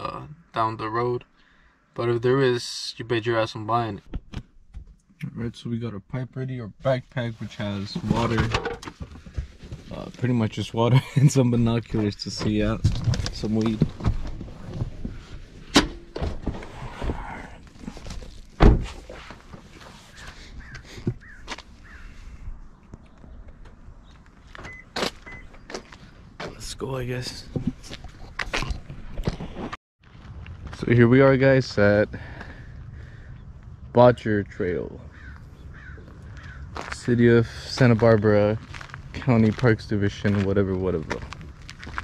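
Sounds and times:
rustling and handling noise: 7.1 - 10.6, 11.6 - 21.8
car door slamming: 18.6 - 19.0.

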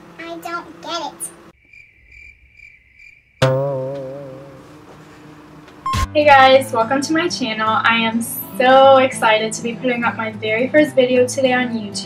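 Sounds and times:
cricket chirping: 1.6 - 3.5
held musical note wavering: 3.4 - 5.2.

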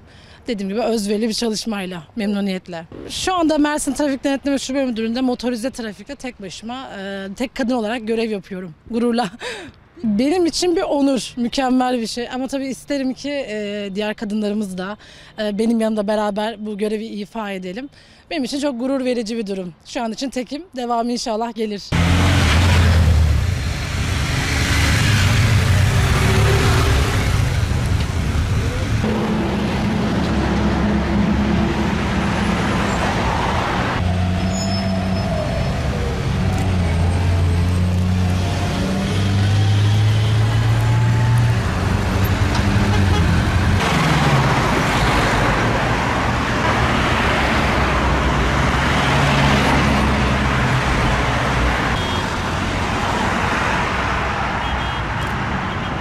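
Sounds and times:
car engines passing: 21.9 - 56.0
motorcycle engines passing: 22.0 - 51.5.

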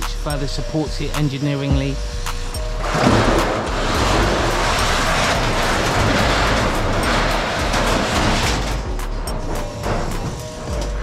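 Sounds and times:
metal sheet scraping: 2.6 - 11.0.

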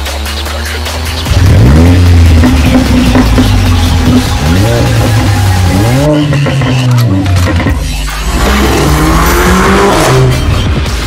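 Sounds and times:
background music: 0.0 - 11.0
car engine revving: 0.0 - 11.0.

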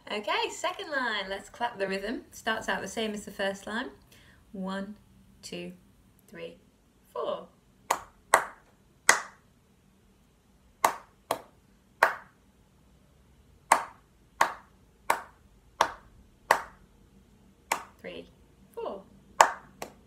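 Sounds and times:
person clapping a rhythm: 7.9 - 9.4, 10.8 - 12.4, 13.7 - 16.9, 17.7 - 18.0, 19.4 - 20.0.

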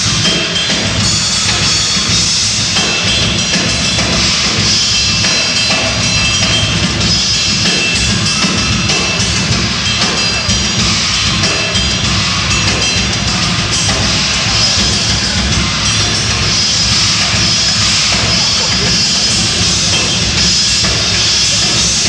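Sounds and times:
drum kit: 0.0 - 22.0
rock band playing: 0.0 - 22.0.

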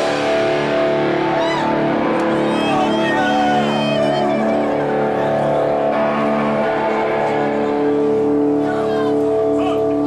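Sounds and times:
bass guitar: 0.0 - 10.0
distorted electric guitar: 0.0 - 10.0.

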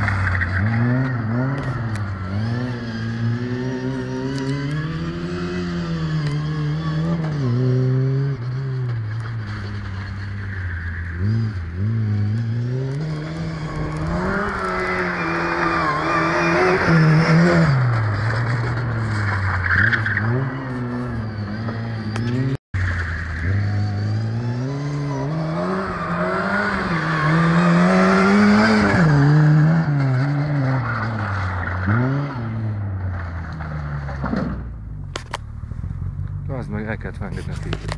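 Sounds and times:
car engine revving: 0.0 - 37.9.

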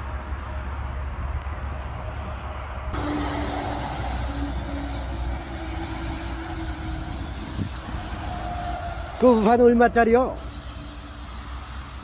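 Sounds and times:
rain hissing: 3.0 - 12.0.

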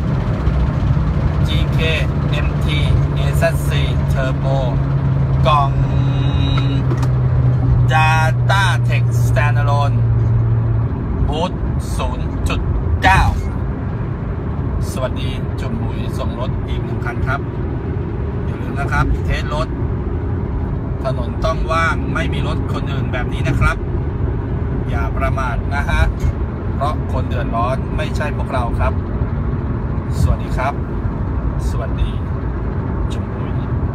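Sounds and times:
car engine droning from inside cabin: 0.0 - 33.9.

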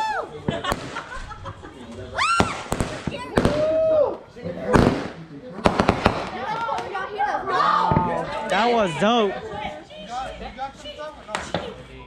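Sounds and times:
fireworks bangs: 0.4 - 1.4, 2.3 - 4.0, 4.6 - 7.0
people shouting: 6.4 - 9.3.

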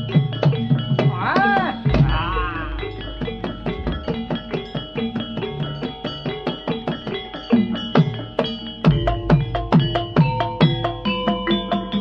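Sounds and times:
gamelan music: 0.0 - 12.0
deep drum stroke: 1.8 - 5.2.

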